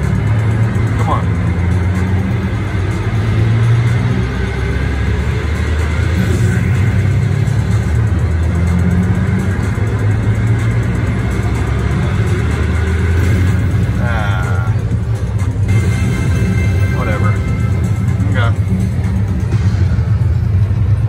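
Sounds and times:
slot machines and crowd rumble: 0.0s - 21.0s.

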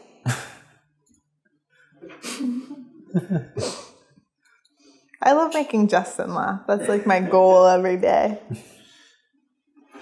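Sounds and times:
person laughing breathily: 2.2s - 3.9s.

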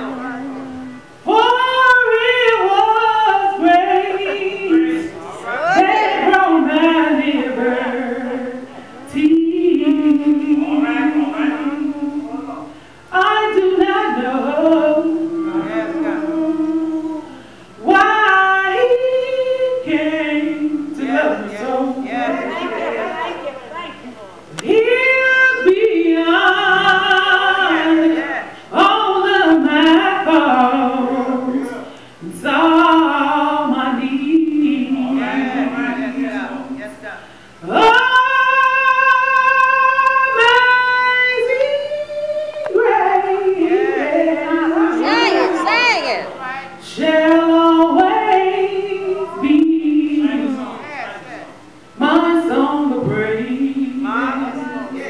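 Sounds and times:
woman singing into microphone: 0.0s - 23.4s, 24.5s - 37.0s, 37.6s - 51.1s, 51.8s - 55.0s
overlapping voices: 0.0s - 50.8s.

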